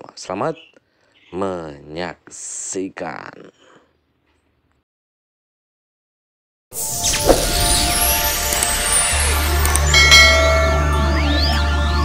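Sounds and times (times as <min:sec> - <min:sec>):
intro music with bass drone: 0:06.9 - 0:12.0
ringing bell chime: 0:09.8 - 0:11.2.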